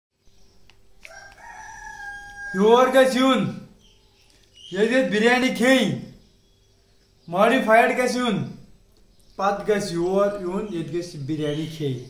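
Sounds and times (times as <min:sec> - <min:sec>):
faint steady hum: 0:00.2 - 0:12.0
rooster crowing: 0:01.0 - 0:03.1.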